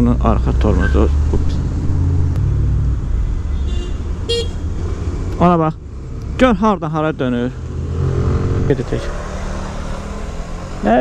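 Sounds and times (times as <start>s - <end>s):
road and traffic noise: 0.0s - 11.0s.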